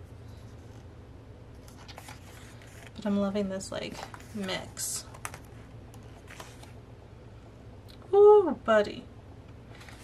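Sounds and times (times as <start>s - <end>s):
paper pages turning: 1.6s - 3.0s, 3.8s - 6.8s, 9.7s - 10.0s
light paper rustle: 1.6s - 3.2s, 3.8s - 6.8s, 9.7s - 10.0s.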